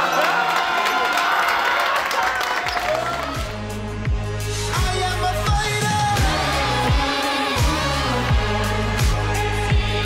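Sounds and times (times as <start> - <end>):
players cheering and shouting: 0.0 - 3.7
song with singing voice: 2.9 - 10.0
deep bass beat: 3.4 - 10.0.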